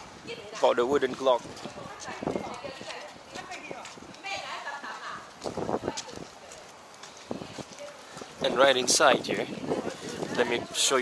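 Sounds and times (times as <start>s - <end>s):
people talking in background: 0.0s - 11.0s
steps on hard surface: 1.0s - 9.0s.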